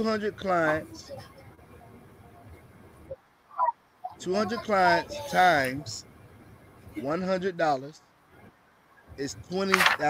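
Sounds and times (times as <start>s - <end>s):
faint video call background noise: 0.0s - 10.0s.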